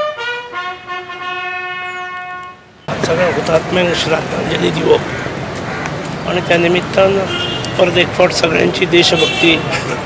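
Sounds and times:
bugle call on brass horn: 0.0 - 2.7.

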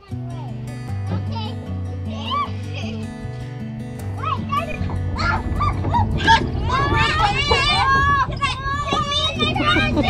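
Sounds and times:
background music with bass notes: 0.0 - 10.0
children squealing: 4.6 - 10.0.

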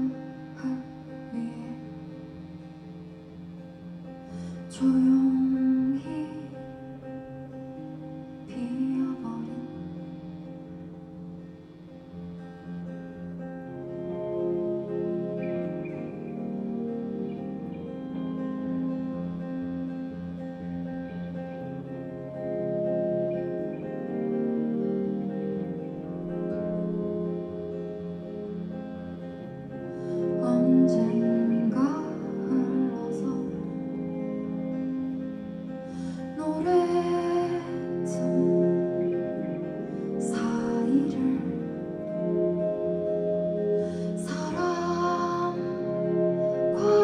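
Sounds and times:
woman's voice: 0.0 - 2.0, 4.6 - 6.6, 8.5 - 9.9, 30.4 - 33.8, 36.4 - 38.6, 40.2 - 41.7
acoustic guitar playing: 0.0 - 47.0.

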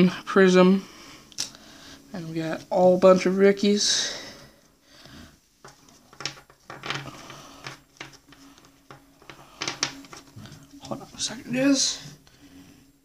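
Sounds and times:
cards clicking on table: 5.6 - 10.3.

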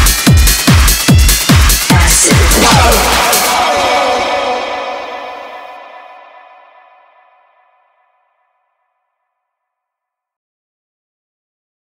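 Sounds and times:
electronic chord ringing with echo: 2.1 - 8.0.

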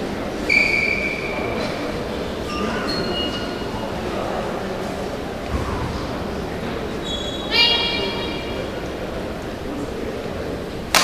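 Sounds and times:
hall background noise: 0.0 - 11.0.

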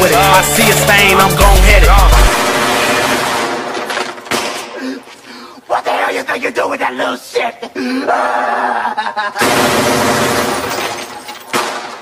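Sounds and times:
rapid automatic gunfire: 1.6 - 3.9, 9.4 - 10.8
sharp gunshot: 2.1 - 4.7, 11.5 - 12.0.

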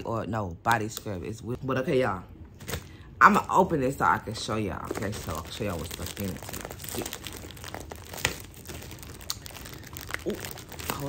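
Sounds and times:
gift packaging crinkling and tearing: 4.6 - 11.0.

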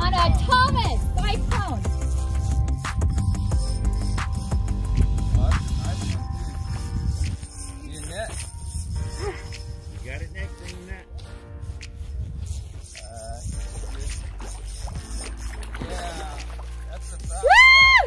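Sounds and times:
wind rumble on microphone: 0.0 - 15.1.

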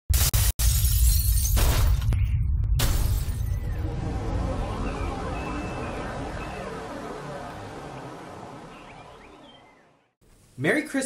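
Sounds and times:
crashing shattering noise: 0.2 - 2.2, 2.8 - 5.3
deep low rumble: 2.0 - 9.8.

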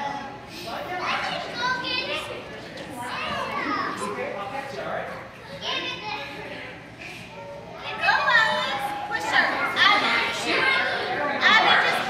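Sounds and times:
children playing and calling out: 0.0 - 4.2, 5.2 - 12.0.

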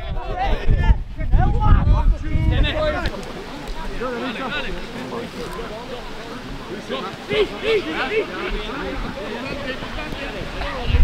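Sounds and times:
people shouting and talking: 0.0 - 11.0.

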